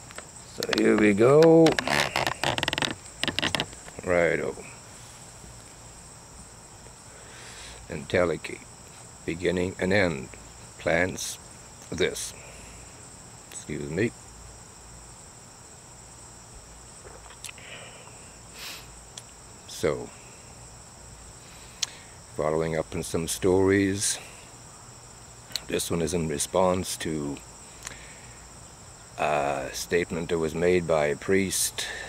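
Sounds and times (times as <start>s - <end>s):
quick clicks and crackles: 0.0s - 3.8s
crickets chirring: 0.0s - 32.0s.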